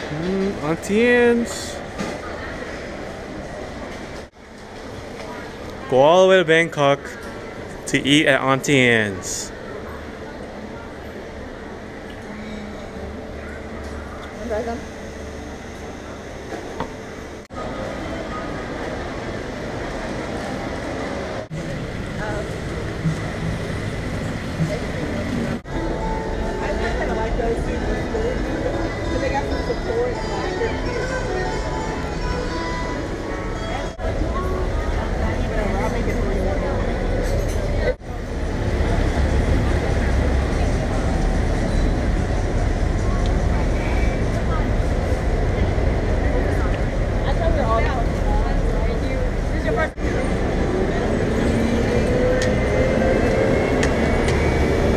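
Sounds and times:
crowd chatter: 0.0s - 54.9s
road traffic rumble: 0.0s - 54.9s.

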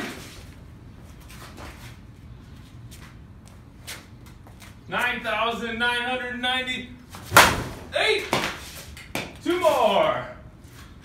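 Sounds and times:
faint footsteps: 0.1s - 5.2s.

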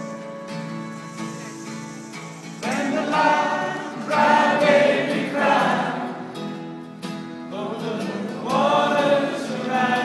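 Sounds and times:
acoustic guitar: 0.0s - 10.0s
choir singing: 2.6s - 6.5s, 7.5s - 10.0s.

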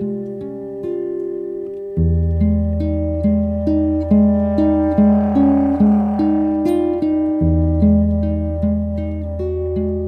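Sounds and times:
plucked guitar notes: 0.0s - 10.0s
low held bass note: 2.2s - 10.0s.

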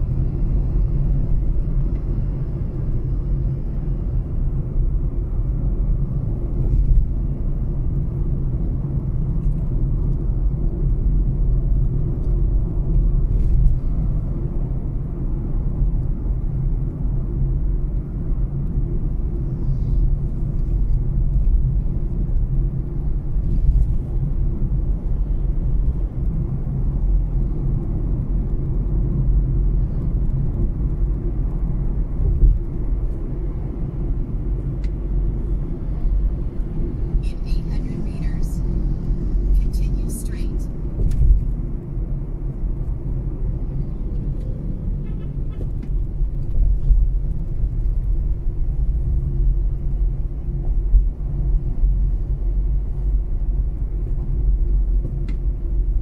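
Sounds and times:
car cabin road and engine rumble: 0.0s - 56.0s.

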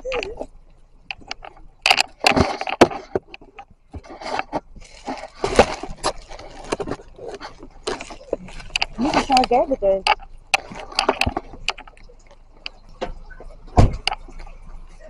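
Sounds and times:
sharp clicks and knocks: 0.0s - 14.8s.

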